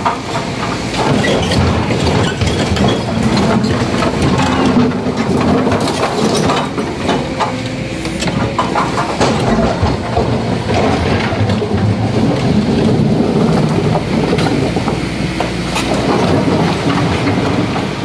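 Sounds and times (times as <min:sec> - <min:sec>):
rock and steel bucket clattering: 0:00.0 - 0:07.6, 0:08.2 - 0:18.0
excavator diesel engine running: 0:00.0 - 0:18.0.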